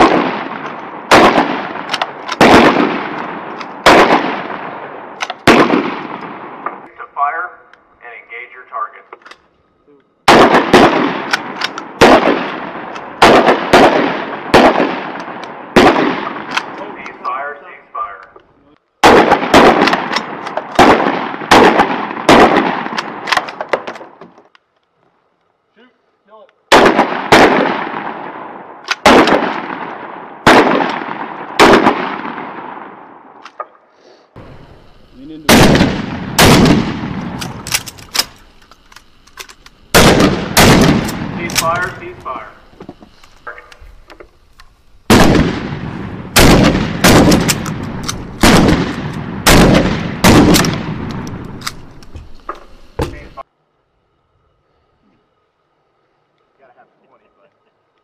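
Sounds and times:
rifle shots echoing: 0.0s - 7.5s, 10.2s - 17.6s, 19.0s - 24.2s, 26.7s - 33.6s, 34.4s - 42.7s, 45.0s - 52.0s.

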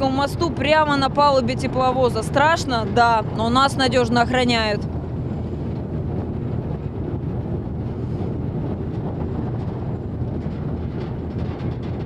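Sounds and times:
diesel locomotive running: 0.0s - 12.0s
wind buffeting microphone: 0.0s - 12.0s.

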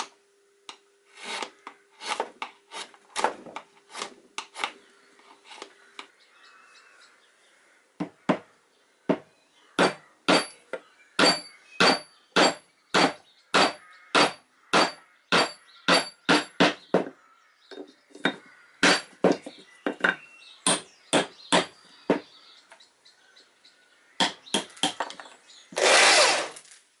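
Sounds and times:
hammer striking wooden peg: 9.1s - 10.6s, 11.2s - 17.2s, 18.3s - 22.2s, 24.2s - 25.2s.

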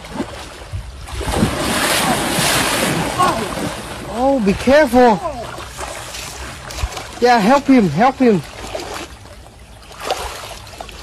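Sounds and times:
heavy water splashing: 0.0s - 11.0s.

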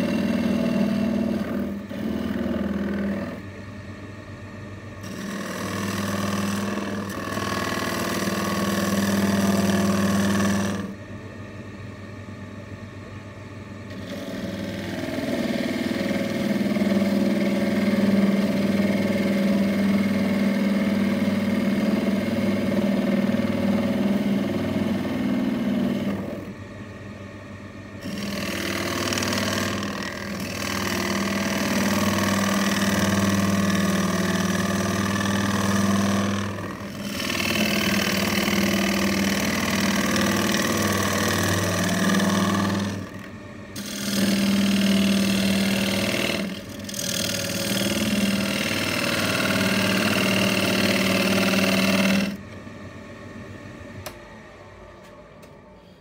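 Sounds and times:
gouge cutting wood: 0.0s - 3.5s, 5.0s - 11.0s, 13.9s - 26.5s, 28.0s - 52.4s
lathe motor hum: 0.0s - 11.5s, 13.6s - 56.0s.

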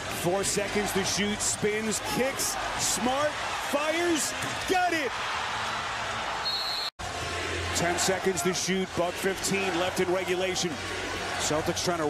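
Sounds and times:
arena crowd voices: 0.0s - 12.0s.

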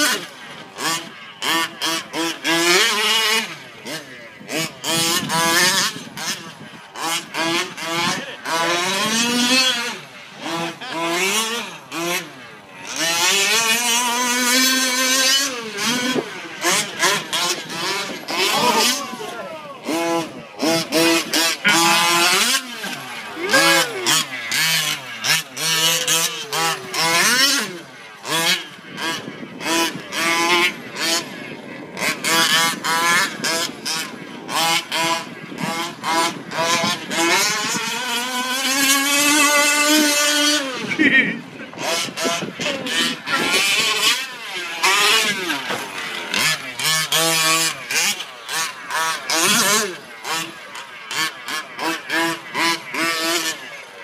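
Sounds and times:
two-stroke engine revving: 0.0s - 54.0s.

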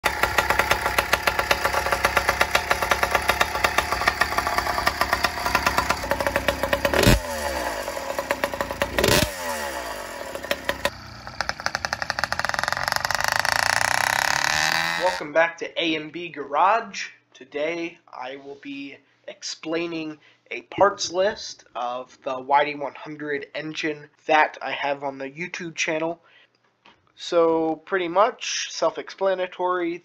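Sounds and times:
two-stroke engine running: 0.0s - 15.2s.

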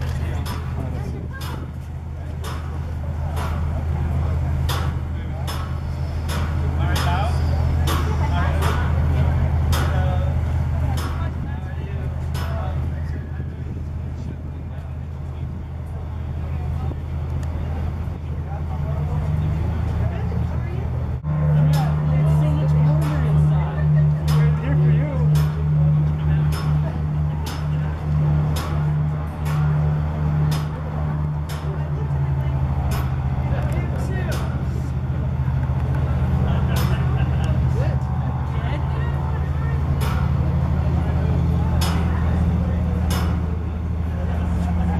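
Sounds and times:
muffled chatter of people: 0.0s - 44.9s
steady low hum: 0.0s - 44.9s.

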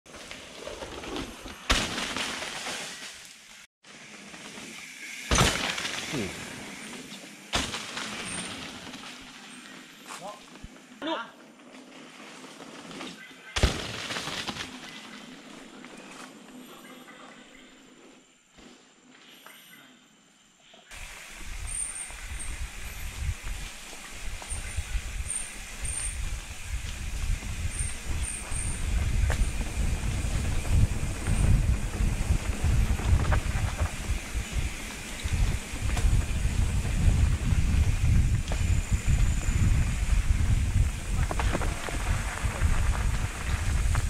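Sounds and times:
bike rumble over rough ground: 0.1s - 3.2s, 3.9s - 9.9s, 10.5s - 16.6s, 20.9s - 44.0s.

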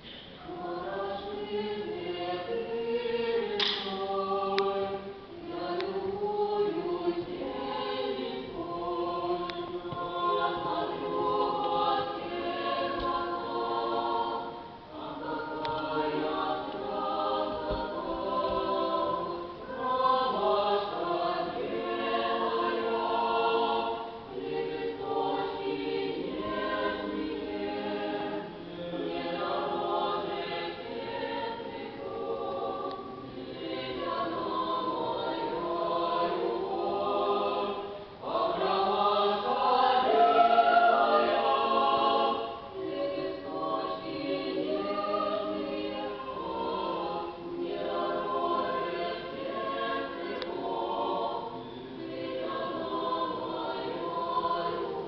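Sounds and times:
church choir singing a cappella: 0.0s - 55.0s.

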